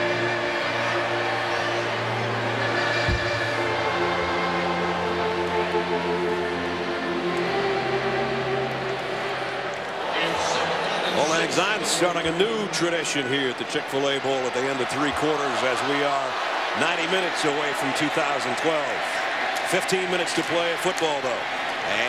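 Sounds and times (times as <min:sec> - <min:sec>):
music with long held chords: 0:00.0 - 0:09.9
large crowd noise: 0:00.0 - 0:22.0
short knock: 0:03.1 - 0:03.4.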